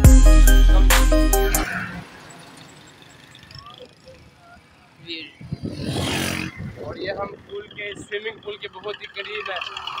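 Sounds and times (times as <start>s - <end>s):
motorcycle engines: 0.0s - 10.0s
road traffic: 0.0s - 10.0s.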